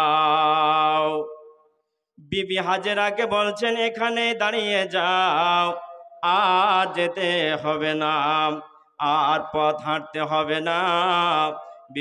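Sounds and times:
man chanting melodically: 0.0 - 1.5, 2.2 - 12.0.

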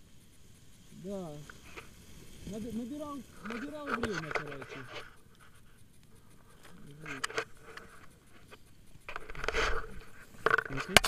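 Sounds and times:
hiss of passing air: 0.0 - 10.5
light rustling: 0.0 - 11.0.

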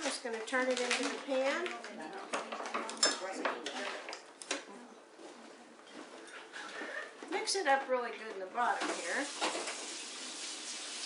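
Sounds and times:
batter pouring: 9.1 - 11.0.

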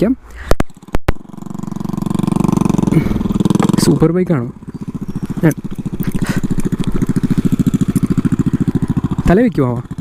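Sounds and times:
motorcycle engine pulling away: 0.6 - 10.0.

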